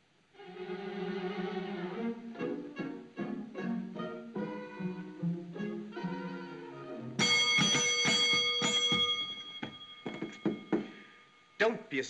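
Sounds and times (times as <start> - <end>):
desk call bell dinging: 7.2 - 11.6.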